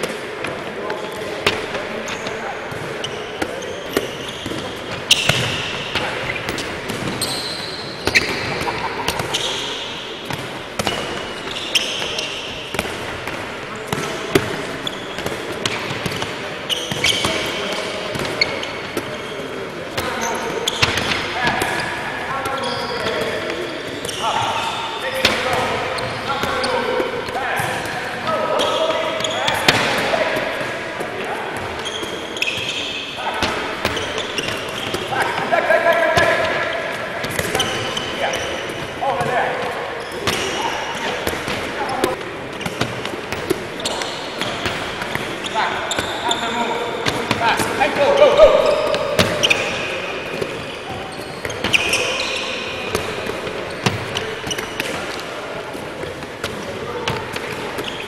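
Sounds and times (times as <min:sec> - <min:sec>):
players' voices: 0:00.0 - 0:58.0
balls bouncing on wooden floor: 0:36.2 - 0:46.4, 0:47.0 - 0:55.2.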